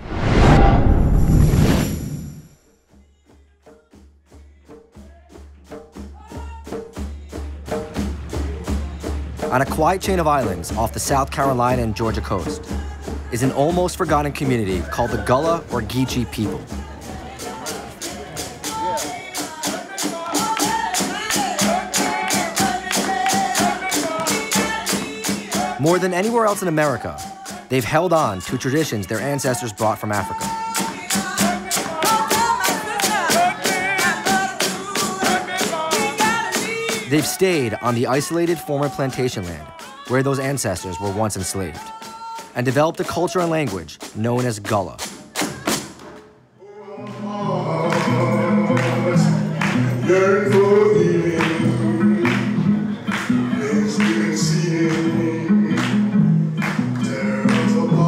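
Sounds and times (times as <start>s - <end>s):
percussion beat: 1.3s - 46.3s, 47.3s - 58.0s
woman singing: 16.6s - 25.7s, 30.4s - 37.1s, 39.7s - 40.2s, 41.8s - 42.6s.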